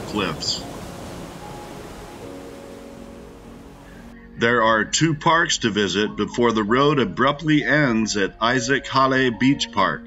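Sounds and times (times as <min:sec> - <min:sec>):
ocean waves breaking: 0:00.0 - 0:04.1.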